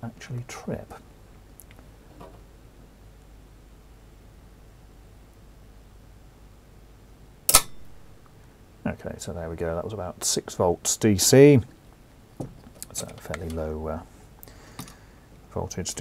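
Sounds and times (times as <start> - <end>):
circuit breaker snapping off: 7.5 - 7.9.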